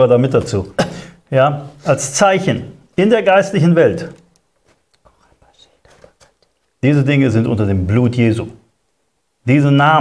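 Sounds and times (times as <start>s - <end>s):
person speaking: 0.0s - 8.7s
soft rustling of papers: 2.9s - 7.0s.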